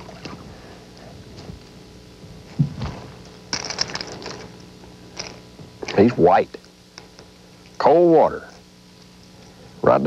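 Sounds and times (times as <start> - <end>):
low thump: 2.5 - 3.2.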